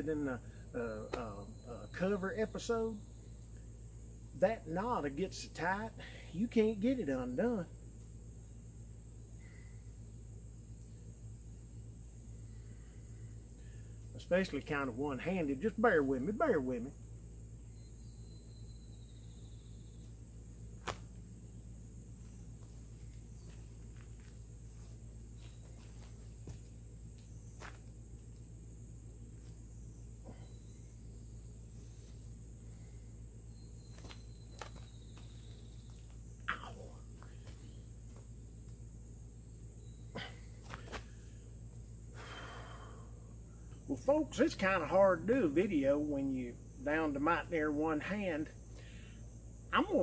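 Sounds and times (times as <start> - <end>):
low steady rumble: 0.0 - 49.9
high insect drone: 0.0 - 50.0.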